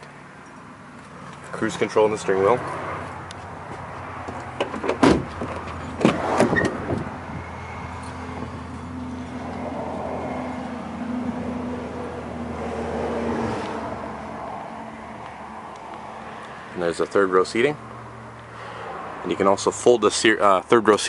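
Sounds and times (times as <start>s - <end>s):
car door and latch clunks: 4.6s - 7.1s.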